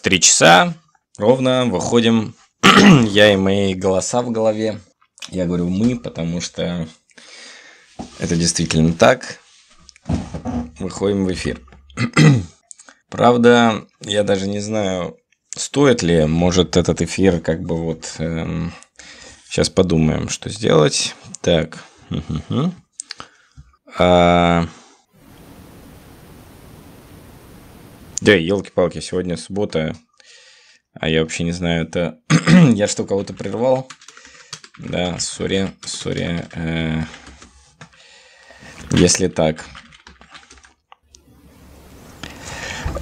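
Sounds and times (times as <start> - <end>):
faint hiss: 25.1 - 28.3, 41.2 - 43.0.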